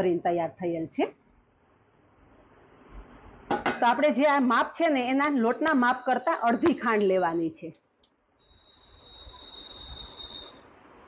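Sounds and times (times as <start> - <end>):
woman speaking: 0.0 - 1.2, 3.8 - 7.8.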